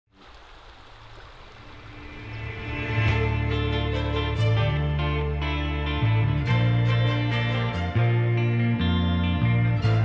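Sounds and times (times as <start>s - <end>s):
creek water flowing: 0.1s - 5.8s.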